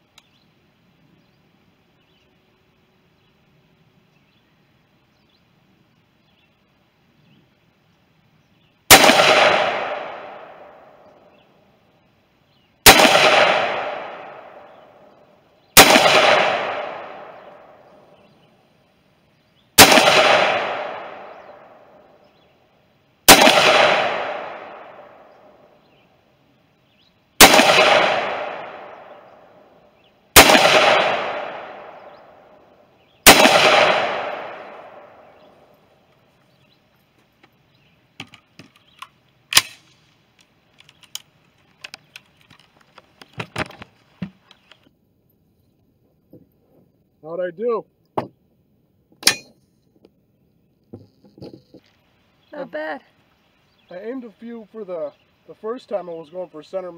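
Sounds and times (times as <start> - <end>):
rifle shots echoing: 8.9 - 11.2, 12.8 - 15.2, 15.8 - 18.2, 19.8 - 22.2, 23.2 - 25.7, 27.4 - 35.7.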